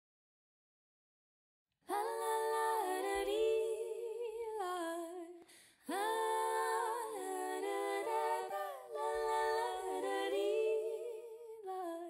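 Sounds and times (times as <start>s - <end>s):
wordless female vocal harmony: 1.9s - 12.0s.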